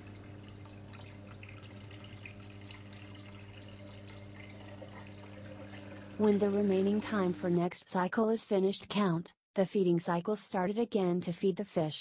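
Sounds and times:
water trickling and dripping: 0:00.0 - 0:07.5
steady low hum: 0:00.0 - 0:07.6.

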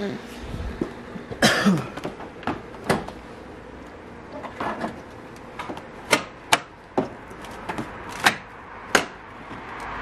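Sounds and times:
person coughing: 0:01.4 - 0:02.0.

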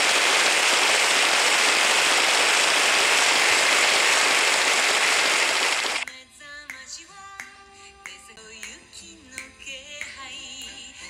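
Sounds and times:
loud steady hiss: 0:00.0 - 0:06.0.

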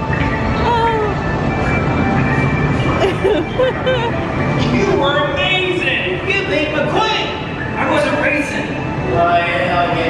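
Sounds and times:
ride car rumbling along track: 0:00.0 - 0:10.0.

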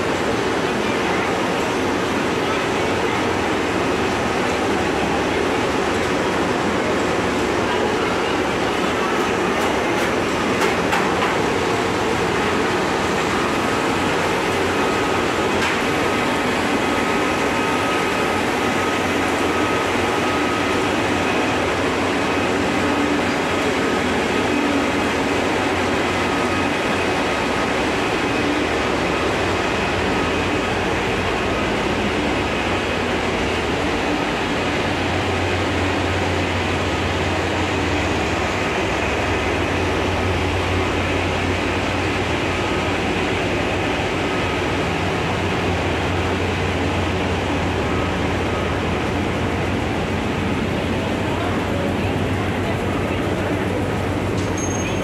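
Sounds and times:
machinery rumble with faint whine: 0:00.0 - 0:55.0.

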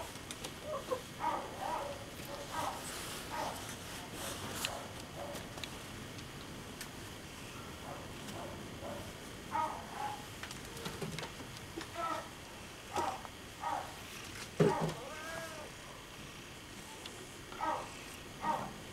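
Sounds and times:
cat meowing: 0:14.7 - 0:15.8.

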